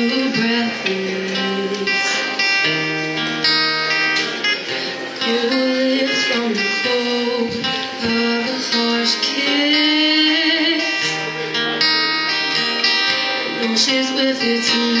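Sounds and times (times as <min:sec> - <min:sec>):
acoustic-electric guitar strumming: 0:00.0 - 0:15.0.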